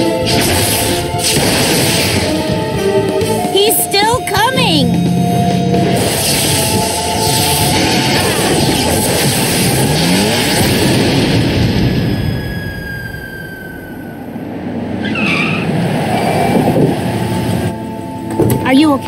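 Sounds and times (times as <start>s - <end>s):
cartoon tyres skidding: 0.0s - 17.7s
person speaking: 3.5s - 4.9s
thin falling whistles: 12.0s - 14.3s.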